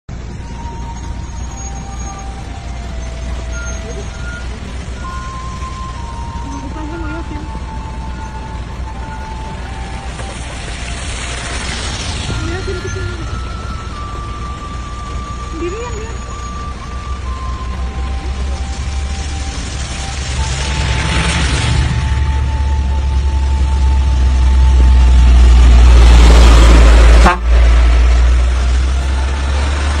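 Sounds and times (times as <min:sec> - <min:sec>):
steady rain: 0:00.1 - 0:30.0
vehicle engine rumble: 0:00.1 - 0:30.0.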